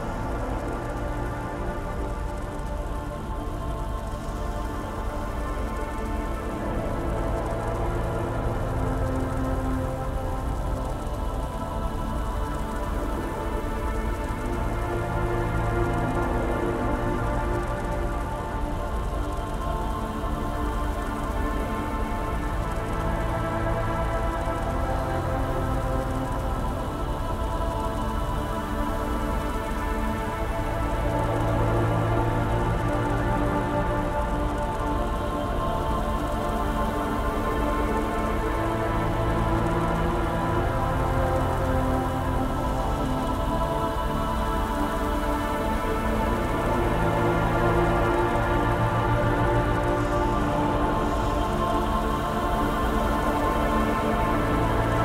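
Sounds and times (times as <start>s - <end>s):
dark ambient synth drone: 0.0s - 55.0s
rain-like noise: 0.0s - 55.0s.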